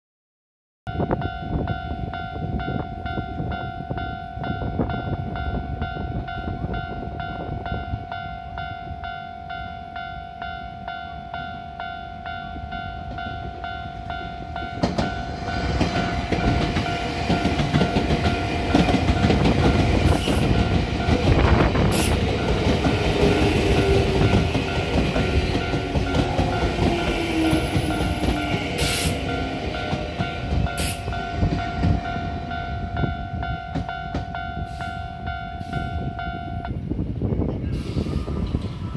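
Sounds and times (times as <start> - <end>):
level-crossing warning bell: 0.9 - 37.0
train wheels rumbling on rails: 1.2 - 38.9.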